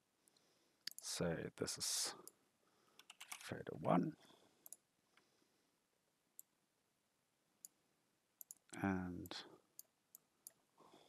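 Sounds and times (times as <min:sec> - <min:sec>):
computer mouse clicks: 0:03.0 - 0:03.4, 0:04.6 - 0:04.8, 0:08.4 - 0:10.6.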